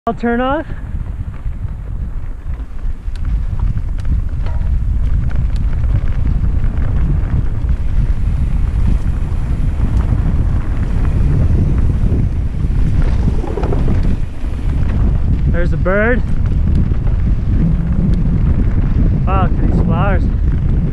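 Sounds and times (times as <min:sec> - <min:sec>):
wind buffeting microphone: 0:00.1 - 0:20.9
bike clicks and rattles: 0:00.7 - 0:20.9.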